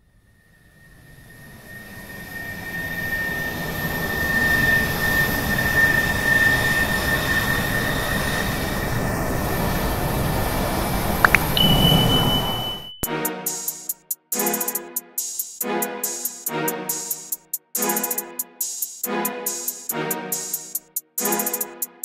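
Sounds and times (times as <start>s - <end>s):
short rising chirps: 11.3s - 13.1s
steady high beep: 11.3s - 13.1s.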